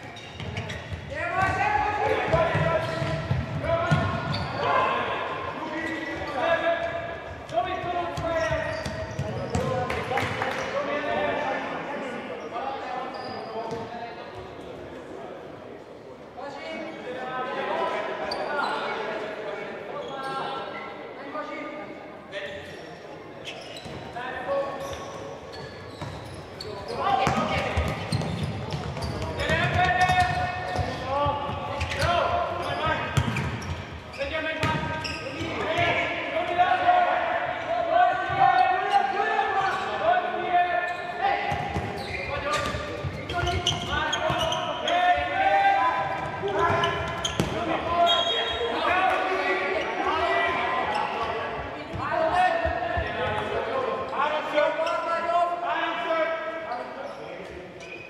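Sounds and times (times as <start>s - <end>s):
ball kicked and bouncing on court: 46.2s - 47.6s.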